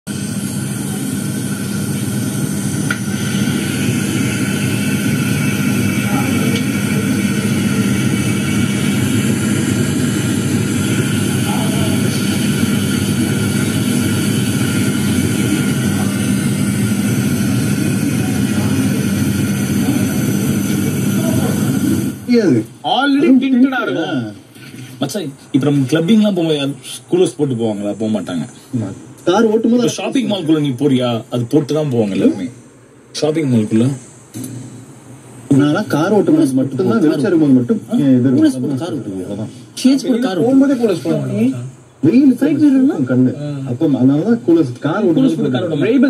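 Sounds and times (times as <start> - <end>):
steady hum and rushing noise: 0.1 - 46.0.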